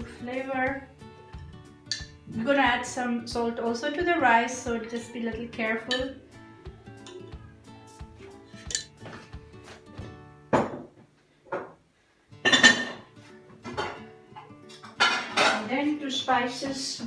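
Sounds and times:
background music: 0.0 - 10.9, 12.3 - 17.0.

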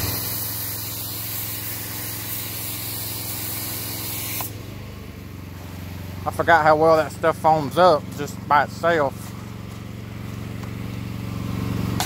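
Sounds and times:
foam cannon spraying hiss: 0.0 - 4.6
small engine running: 0.0 - 12.0.

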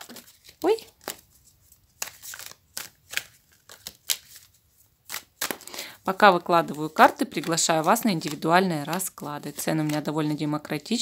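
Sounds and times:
cards being shuffled: 0.0 - 5.8, 6.4 - 10.4.

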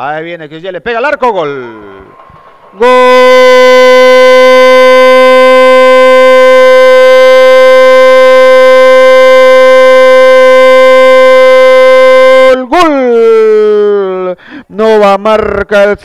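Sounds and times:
commentator shouting: 2.8 - 14.2.

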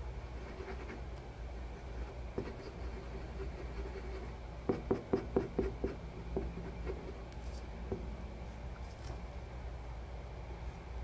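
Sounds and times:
low steady hum: 0.0 - 11.0
paintbrush scratching on paper: 0.4 - 7.6.

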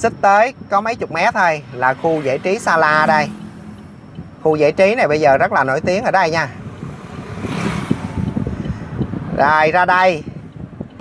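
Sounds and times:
low road rumble: 0.0 - 11.0
wind buffeting microphone: 0.0 - 11.0
motorbike passing: 1.0 - 9.4.

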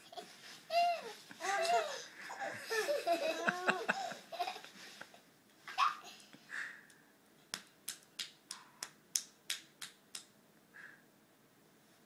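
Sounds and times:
child snapping fingers: 7.5 - 10.3.

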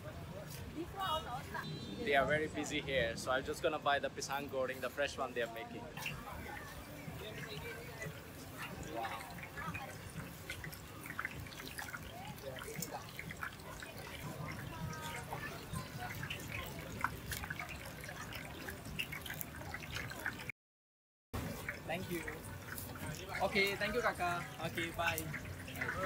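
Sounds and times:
background chatter: 0.0 - 20.5, 21.4 - 26.0.

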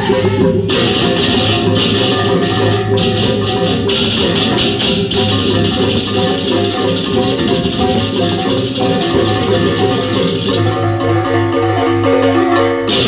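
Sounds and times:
shaker-like rattle: 0.0 - 10.8
melodic music: 0.0 - 13.0.

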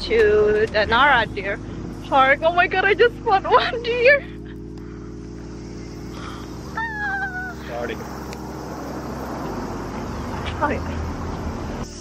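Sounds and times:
low traffic hum: 0.0 - 12.0
high wavering call: 6.7 - 8.0.

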